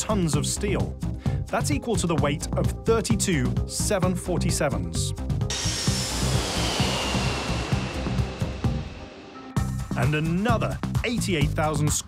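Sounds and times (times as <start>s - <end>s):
background music with beat: 5.1s - 11.8s
jet airliner whine and rush: 5.5s - 10.1s.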